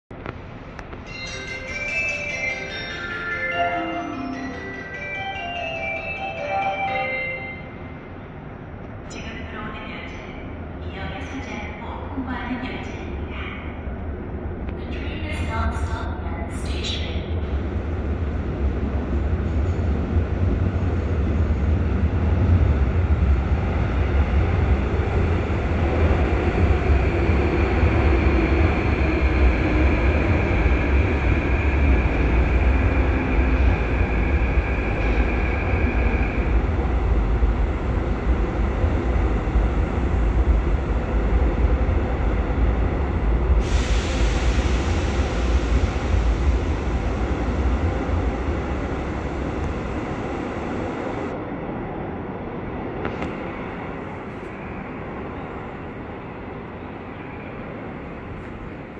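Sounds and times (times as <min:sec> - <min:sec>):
steady high tone: 0:01.0 - 0:08.3
train wheels rumbling on track: 0:17.0 - 0:51.4.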